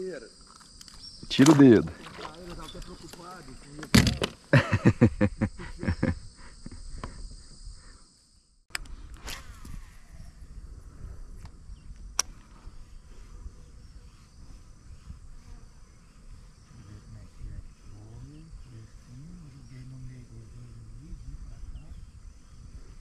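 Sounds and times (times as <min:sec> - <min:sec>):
insect high buzz: 0:00.0 - 0:23.0
insect high chirp: 0:00.0 - 0:23.0
sharp click: 0:08.7 - 0:09.5.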